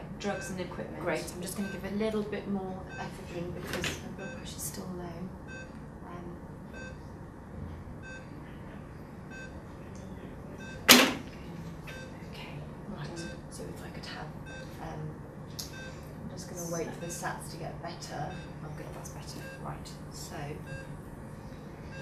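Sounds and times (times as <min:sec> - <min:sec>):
pulse oximeter beeping: 0:06.7 - 0:07.0, 0:08.0 - 0:08.3, 0:09.3 - 0:09.6, 0:14.4 - 0:14.7, 0:15.6 - 0:16.1, 0:18.3 - 0:18.6, 0:20.7 - 0:21.0.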